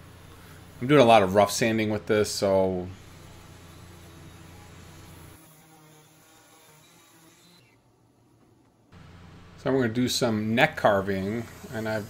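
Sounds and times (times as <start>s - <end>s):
orbital sander buzzing on wood: 3.0s - 7.6s.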